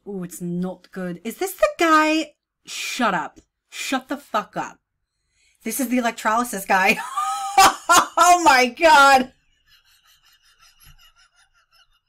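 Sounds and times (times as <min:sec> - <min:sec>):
woman's wheezing silent laugh: 0:09.7 - 0:12.0.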